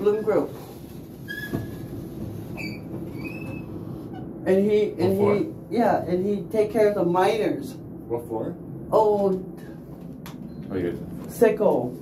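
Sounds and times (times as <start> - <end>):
elevator low rumble: 0.0 - 12.0
short high squeaks: 1.2 - 4.3.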